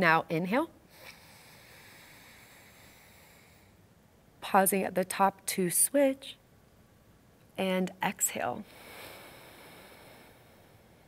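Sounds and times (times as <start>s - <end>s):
faint slow nasal inhale: 0.9s - 3.8s, 8.6s - 11.0s.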